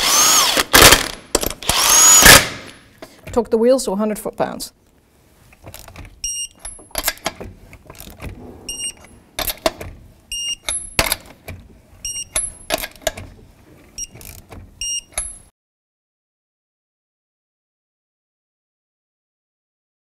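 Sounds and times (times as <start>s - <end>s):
torque wrench beeps: 6.2s - 6.9s, 8.7s - 9.0s, 10.3s - 11.0s, 12.0s - 12.6s, 14.0s - 14.2s, 14.8s - 15.5s.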